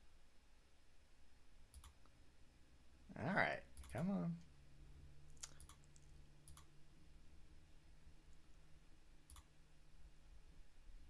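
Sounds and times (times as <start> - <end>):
faint steady hum: 0.0 - 11.0
computer clicks: 1.7 - 2.0, 3.8 - 4.0, 5.3 - 6.7, 9.3 - 9.5.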